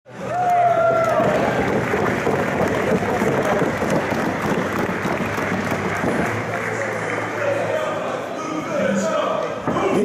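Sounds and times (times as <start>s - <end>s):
crowd applauding: 0.2s - 8.0s.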